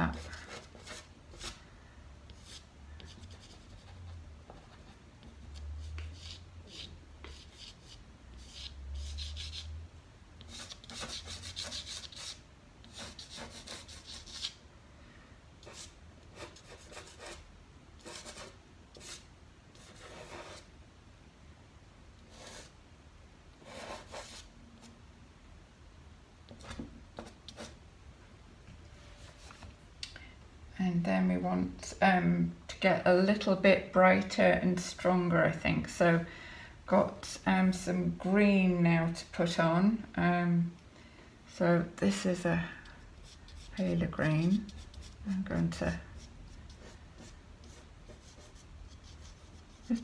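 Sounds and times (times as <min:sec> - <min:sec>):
pastel scratching on paper: 0:00.0 - 0:01.6, 0:10.4 - 0:14.6, 0:15.6 - 0:17.4, 0:43.2 - 0:50.0.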